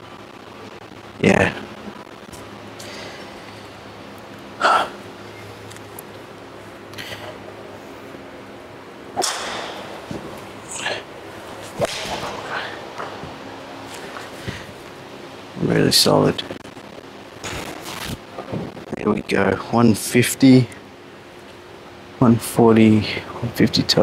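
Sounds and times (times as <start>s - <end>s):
steady low hum: 0.0s - 24.0s
golf club striking ball: 9.2s - 10.2s.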